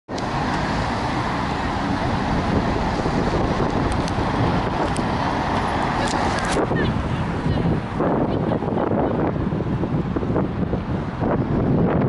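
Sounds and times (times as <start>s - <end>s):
cars driving past: 0.1s - 12.0s.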